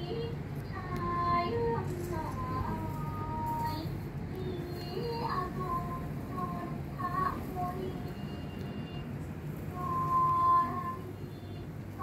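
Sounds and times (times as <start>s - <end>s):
high voice singing held notes: 0.0s - 12.0s.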